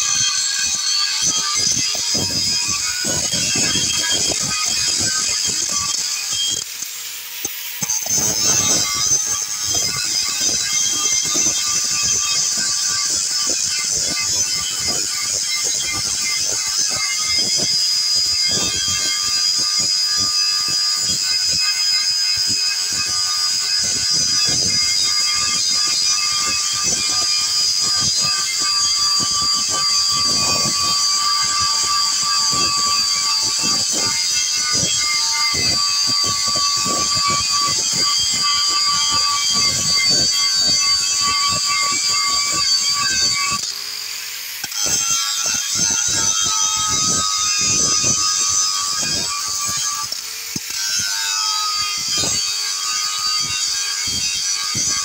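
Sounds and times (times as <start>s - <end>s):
angle grinder grinding metal: 0.0s - 55.0s.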